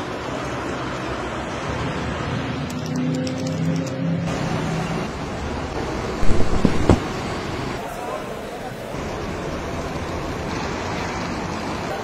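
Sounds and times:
coach engines: 0:00.0 - 0:12.0
traffic: 0:00.0 - 0:12.0.

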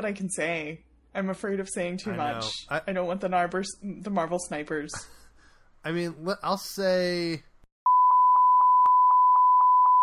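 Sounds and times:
censor bleep: 0:07.9 - 0:10.0.

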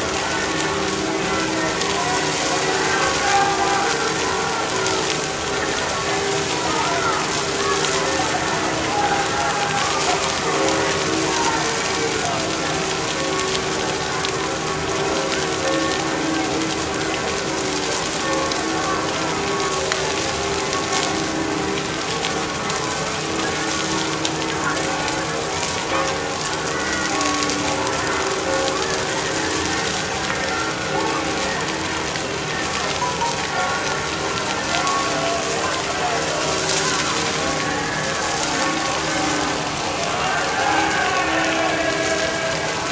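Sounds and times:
bonfire crackling: 0:00.0 - 0:42.9
rain falling: 0:00.0 - 0:42.9.

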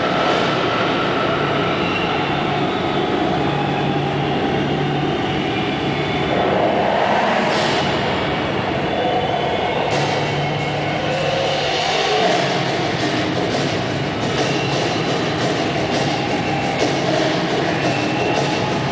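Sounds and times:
loud rumbling soundtrack: 0:00.0 - 0:18.9.

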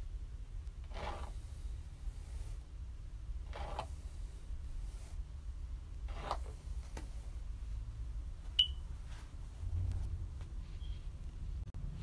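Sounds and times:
low room rumble: 0:00.0 - 0:12.0.

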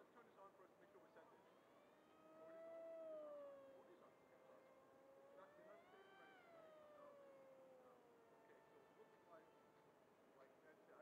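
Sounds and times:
faint whine of model plane motor: 0:00.0 - 0:11.0.

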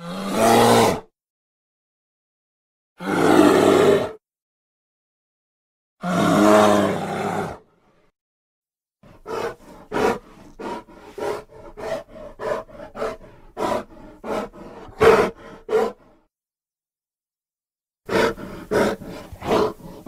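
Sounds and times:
bear roaring: 0:00.0 - 0:01.1, 0:03.0 - 0:04.2, 0:06.0 - 0:07.7, 0:09.2 - 0:16.2, 0:18.1 - 0:20.0.

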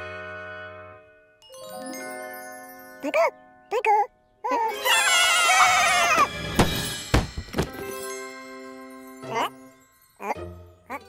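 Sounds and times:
character's wavering voice: 0:03.0 - 0:04.9
cartoon case unlatching thunks: 0:06.4 - 0:07.9.

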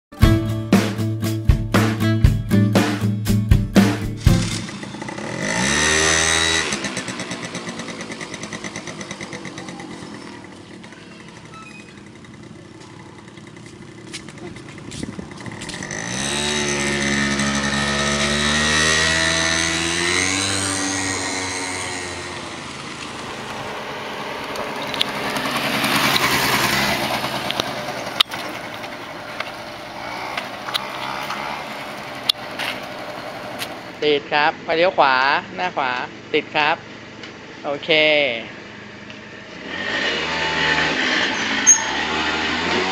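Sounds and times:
scooter engine revving: 0:03.8 - 0:34.0, 0:38.8 - 0:42.9.

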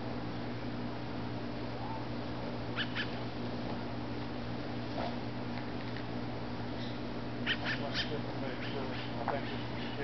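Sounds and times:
low background hum: 0:00.0 - 0:10.0
high-pitched animal calls: 0:02.8 - 0:03.2, 0:07.4 - 0:10.0.

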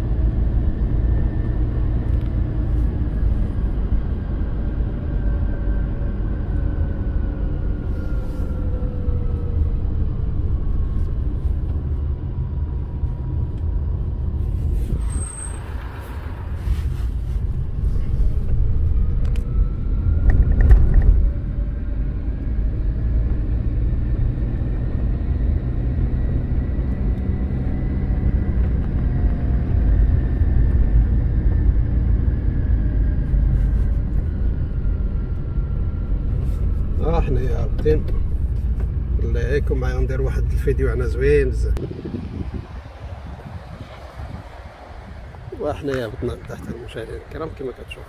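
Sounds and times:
car engine and road noise: 0:00.0 - 0:48.0.

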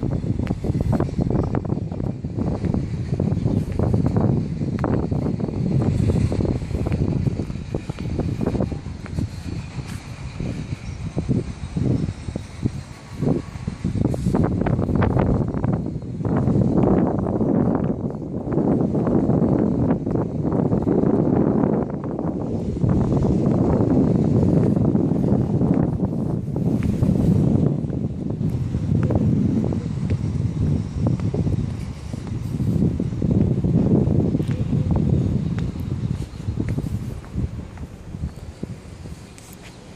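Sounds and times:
wind buffeting microphone: 0:00.0 - 0:39.9.

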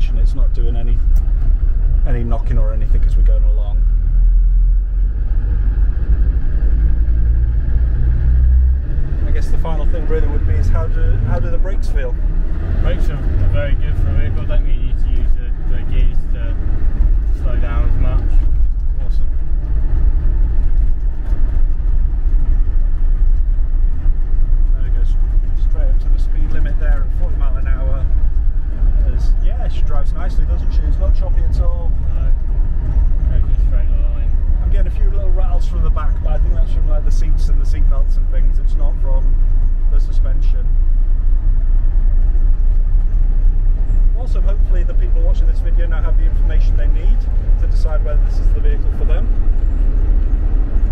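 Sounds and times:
diesel engine rumble: 0:00.0 - 0:50.9
road noise: 0:00.0 - 0:50.9.

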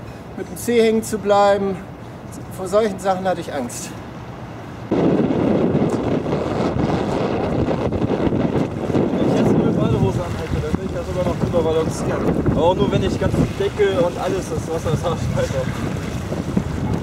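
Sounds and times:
storm wind buffeting microphone: 0:04.8 - 0:17.0.

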